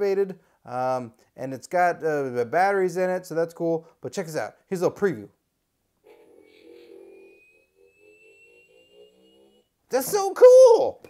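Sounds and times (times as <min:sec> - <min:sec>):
toy electronic sound effect: 0:06.1 - 0:10.2.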